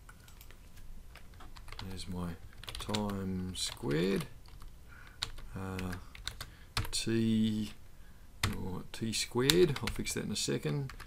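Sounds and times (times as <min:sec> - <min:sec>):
man talking: 0:01.8 - 0:04.4, 0:05.5 - 0:06.1, 0:06.9 - 0:07.8, 0:08.4 - 0:11.0.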